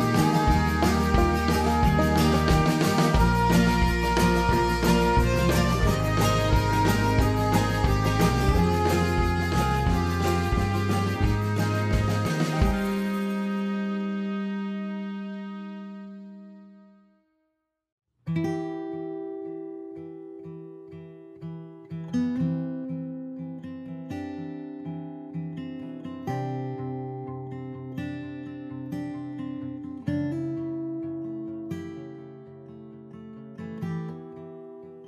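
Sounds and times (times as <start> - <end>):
held music chord: 0.0 - 16.4
acoustic guitar instrumental: 0.0 - 16.9, 18.2 - 35.0.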